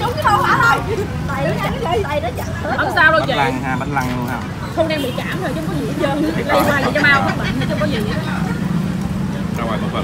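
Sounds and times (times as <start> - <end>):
street traffic engine hum: 0.0 - 10.0.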